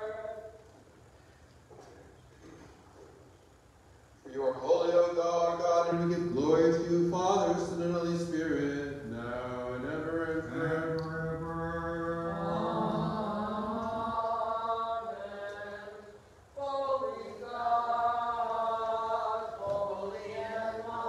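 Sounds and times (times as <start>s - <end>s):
low sustained drone tone: 5.8s - 15.1s
voices chanting long notes: 7.4s - 16.0s.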